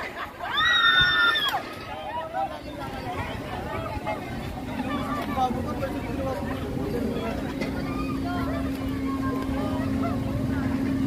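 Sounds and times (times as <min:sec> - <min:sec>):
crowd chatter: 0:00.0 - 0:11.0
low mechanical hum: 0:00.0 - 0:11.0.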